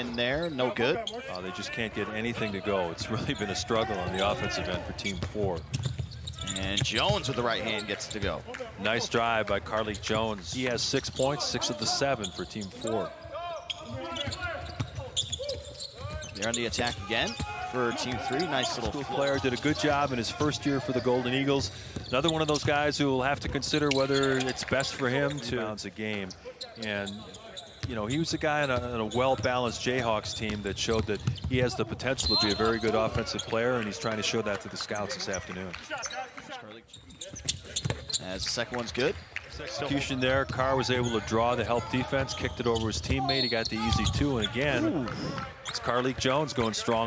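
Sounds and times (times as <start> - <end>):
sneakers squeaking on floor: 0.0 - 1.5, 2.4 - 8.6, 11.0 - 21.3, 23.8 - 34.1, 35.0 - 47.0
basketball bouncing on court: 5.0 - 7.4, 13.8 - 17.6, 30.2 - 32.4, 37.2 - 38.2.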